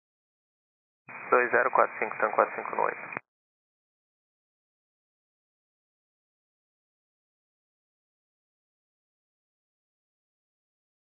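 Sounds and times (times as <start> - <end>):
person speaking over radio: 1.4 - 3.2.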